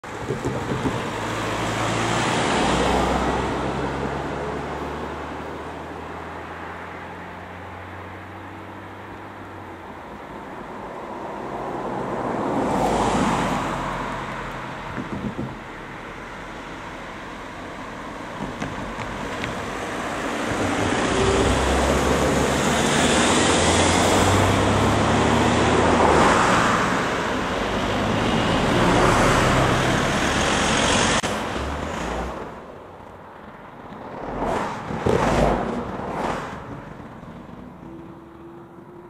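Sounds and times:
cars driving past: 0.0s - 39.0s.

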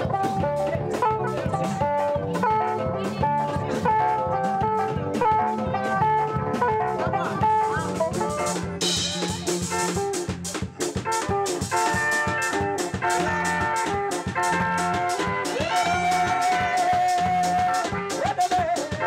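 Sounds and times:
driving drum kit beat: 0.0s - 19.0s
fast electric guitar lines: 0.0s - 19.0s.

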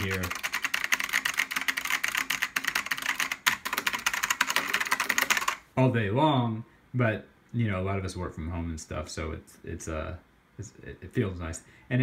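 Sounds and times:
fast typing on mechanical keyboard: 0.0s - 5.6s.

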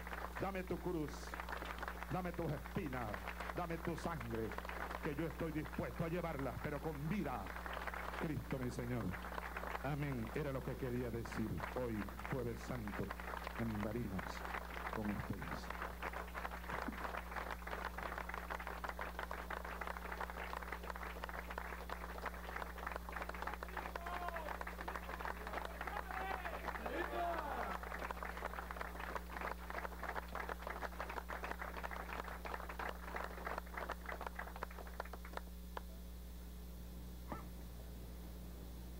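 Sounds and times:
audience applauding: 0.0s - 35.5s
voices calling out: 23.6s - 27.8s.

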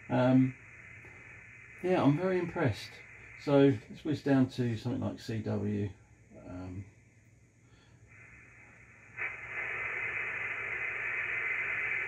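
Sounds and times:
radio receiver hiss: 0.0s - 12.0s.

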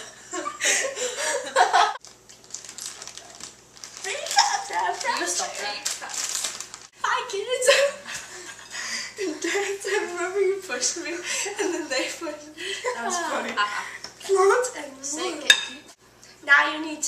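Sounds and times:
girls talking indistinctly: 9.4s - 17.0s.

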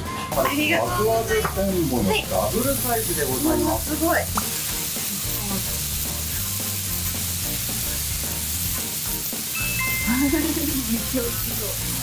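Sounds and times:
meat sizzling on a hot plate: 0.2s - 12.0s.

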